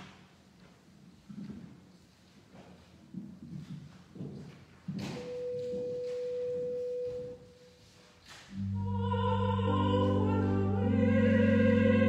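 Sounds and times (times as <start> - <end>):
steady pure tone: 8.6 - 12.0.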